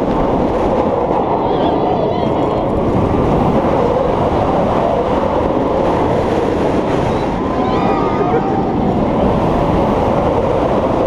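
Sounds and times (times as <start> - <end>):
roller coaster wheels rumbling on rails: 0.0 - 11.0
rushing air: 0.0 - 11.0.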